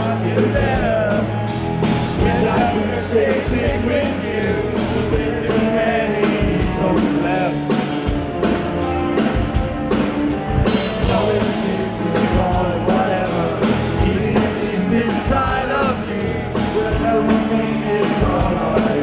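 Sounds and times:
person singing lead vocal: 0.0s - 1.5s, 2.1s - 8.3s, 10.6s - 19.0s
drum kit beating: 0.0s - 19.0s
rock band playing live: 0.0s - 19.0s.

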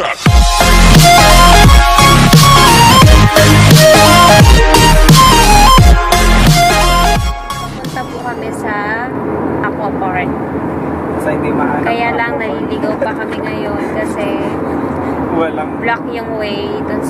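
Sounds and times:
car road and engine noise: 0.0s - 17.0s
people talking: 7.8s - 10.4s, 11.2s - 14.6s, 15.3s - 17.0s.

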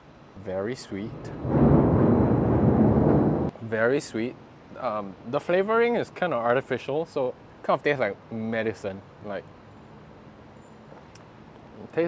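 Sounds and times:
distant traffic hum: 0.0s - 3.8s.

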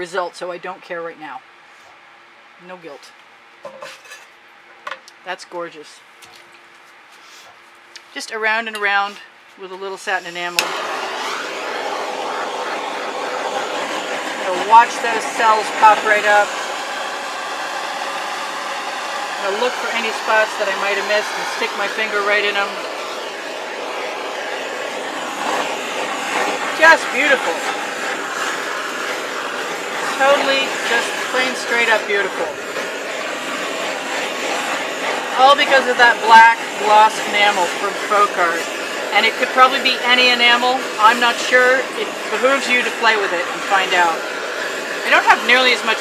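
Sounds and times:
person speaking: 8.0s - 10.6s, 14.4s - 16.6s, 19.4s - 22.9s, 26.6s - 27.7s, 30.0s - 32.6s, 35.3s - 44.2s, 45.0s - 46.0s
butane torch hissing: 10.0s - 46.0s.

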